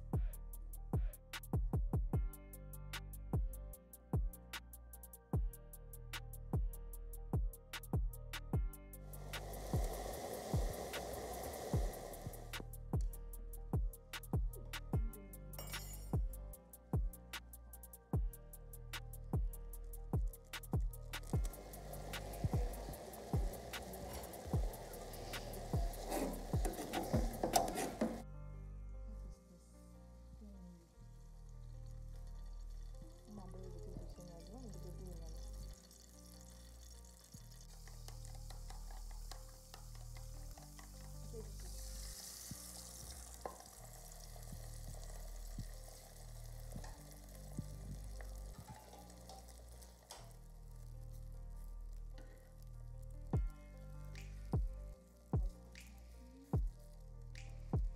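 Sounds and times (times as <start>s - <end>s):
background music with bass line: 0.0s - 29.3s, 50.1s - 57.9s
egg hissing in hot oil: 9.0s - 12.7s, 21.2s - 28.2s, 35.2s - 51.2s
egg sizzling in pan: 9.1s - 12.6s, 21.2s - 28.2s, 31.6s - 51.2s
utensil scraping metal pot: 21.2s - 28.2s, 48.0s - 50.1s.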